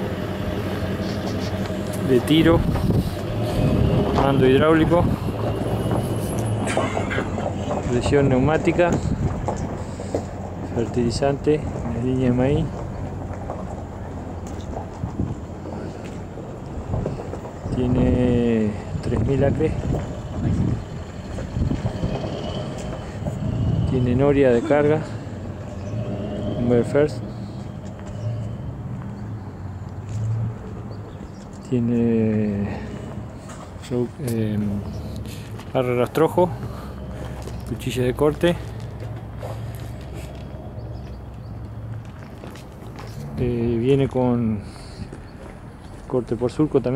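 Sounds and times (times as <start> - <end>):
steady low hum: 12.6 - 46.5.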